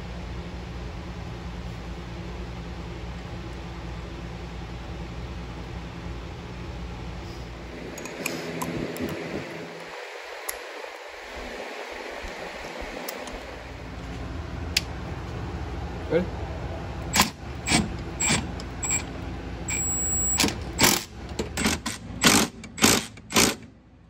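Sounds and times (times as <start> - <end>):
steady low hum: 0.0 - 24.0
sharp metallic clicks: 17.1 - 19.1, 19.7 - 23.7.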